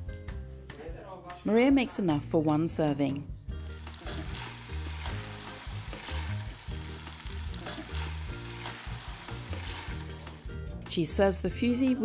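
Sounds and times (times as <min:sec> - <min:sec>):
background music: 0:00.0 - 0:12.0
chicken sizzling in a pot: 0:03.6 - 0:10.8
wooden spoon stirring: 0:07.0 - 0:10.4.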